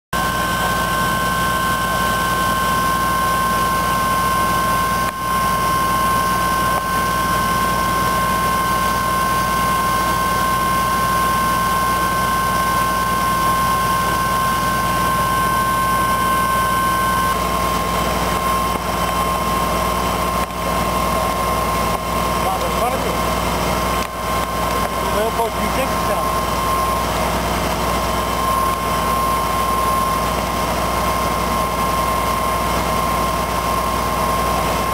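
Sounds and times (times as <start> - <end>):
fire engine running: 0.2 - 34.9
higher whine: 0.2 - 34.9.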